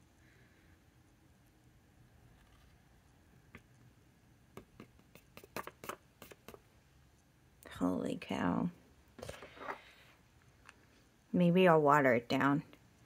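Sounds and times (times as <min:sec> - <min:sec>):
fingers tapping stiff paper card: 0:04.5 - 0:06.6.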